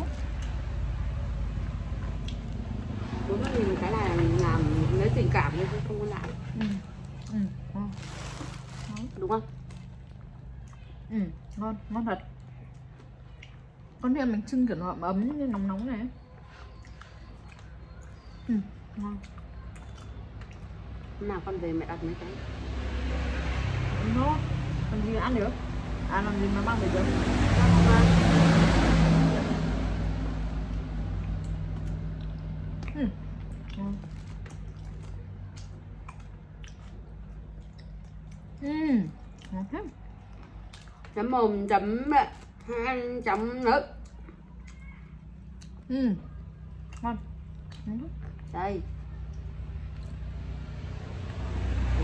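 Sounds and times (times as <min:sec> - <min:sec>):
motor vehicle passing: 0:00.0 - 0:52.0.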